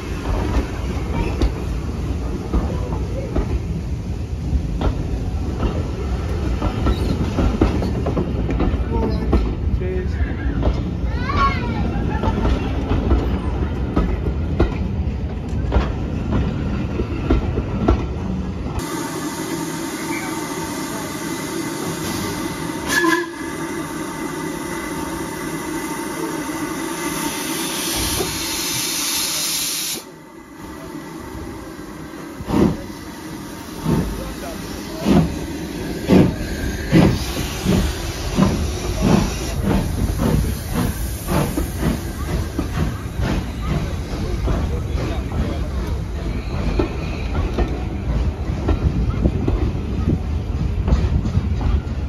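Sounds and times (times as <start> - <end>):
hiss of escaping steam: 18.8 - 30.1, 32.4 - 43.6
steam locomotive exhaust beats: 31.3 - 52.0.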